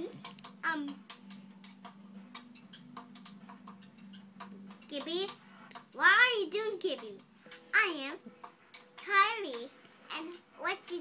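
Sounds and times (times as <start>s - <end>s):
faint small clicks and ticks: 0.0s - 5.9s.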